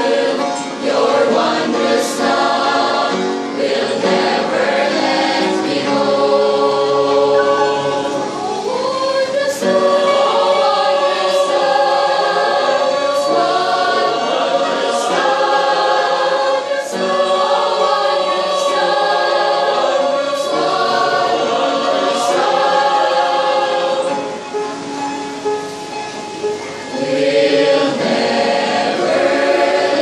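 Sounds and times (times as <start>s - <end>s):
mixed choir singing a hymn: 0.0s - 25.7s, 26.8s - 30.0s.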